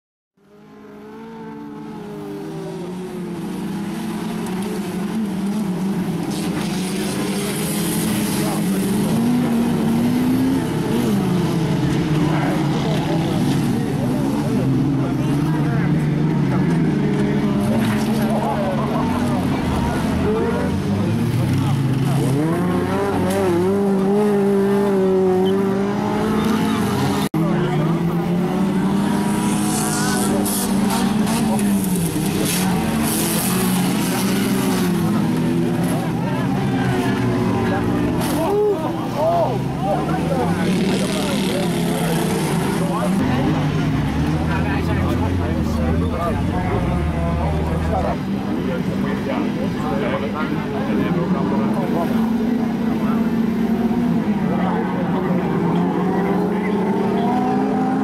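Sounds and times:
car engines racing and revving: 0.4s - 58.0s.

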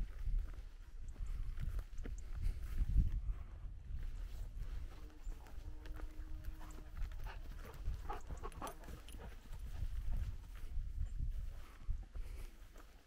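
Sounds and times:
footsteps on dirt trail: 0.0s - 13.0s
wind rumbling on microphone: 0.0s - 13.0s.

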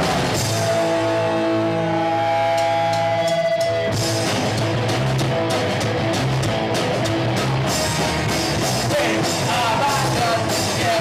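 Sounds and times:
electric guitar chord ringing: 0.0s - 8.6s
punk rock band playing: 0.0s - 11.0s.

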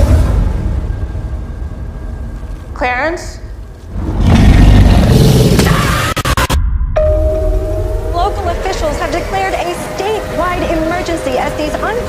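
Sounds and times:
music: 6.1s - 12.0s
sustained tone: 6.6s - 12.0s
loud low rumbling swell: 6.7s - 12.0s.

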